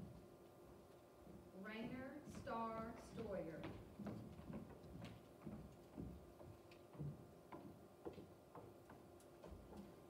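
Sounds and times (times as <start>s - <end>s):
faint clicks and light knocks: 3.6s - 10.0s.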